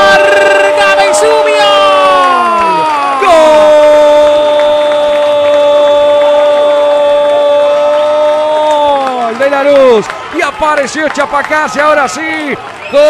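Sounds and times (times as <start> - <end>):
commentator shouting goal cry: 0.0 - 13.0.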